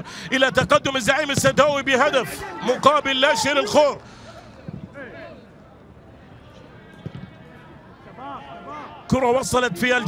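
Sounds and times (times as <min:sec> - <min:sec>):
open-air stadium ambience: 0:00.0 - 0:10.0.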